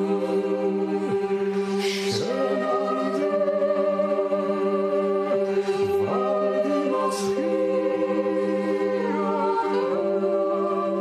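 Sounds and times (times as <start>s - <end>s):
group singing long notes: 0.0s - 11.0s
low vocal drone: 0.0s - 11.0s.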